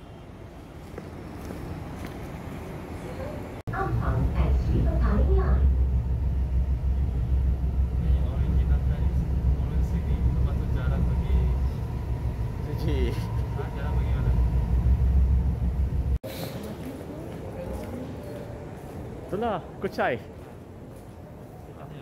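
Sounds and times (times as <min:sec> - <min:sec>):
train carriage low rumble: 0:00.0 - 0:22.0.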